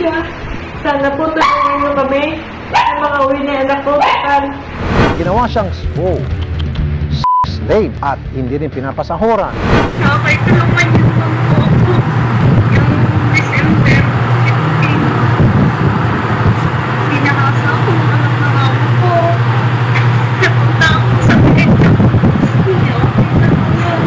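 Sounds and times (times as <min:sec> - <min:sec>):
noisy background: 0:00.0 - 0:24.0
steady low hum: 0:00.0 - 0:24.0.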